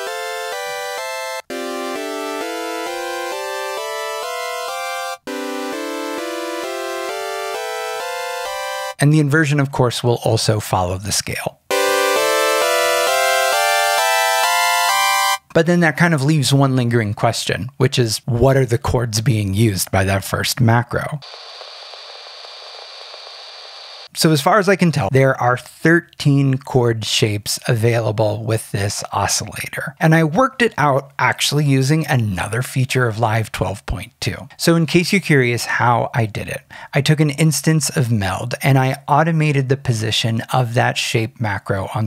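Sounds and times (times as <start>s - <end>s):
synthesizer chords rising scale: 0.0s - 9.0s, 11.7s - 15.4s
static hiss: 21.2s - 24.1s.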